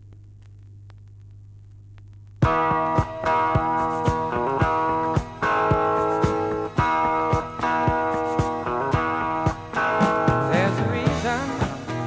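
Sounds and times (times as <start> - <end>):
turntable low hum: 0.0 - 10.0.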